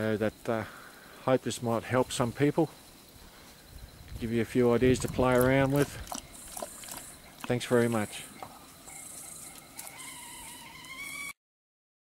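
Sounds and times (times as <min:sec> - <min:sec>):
night insects chirring: 0:00.0 - 0:11.4
thin wavering tone: 0:03.2 - 0:11.3.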